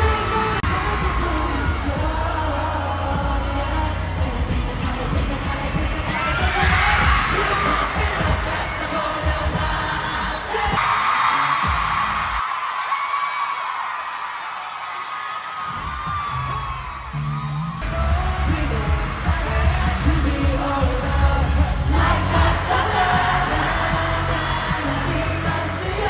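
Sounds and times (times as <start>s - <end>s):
pop music with singing: 0.0s - 13.1s, 14.8s - 26.0s
crowd screaming: 0.0s - 26.0s
fans whooping: 0.0s - 26.0s.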